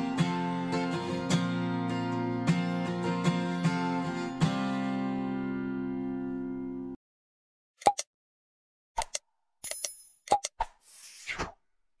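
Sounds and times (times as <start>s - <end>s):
short clicks: 7.8s - 8.1s.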